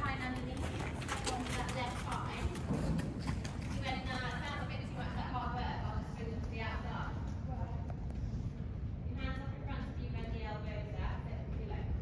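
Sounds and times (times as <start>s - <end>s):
woman talking: 0.0s - 2.9s, 3.7s - 7.9s, 9.1s - 12.0s
horse hoofbeats on soft ground: 0.0s - 5.2s.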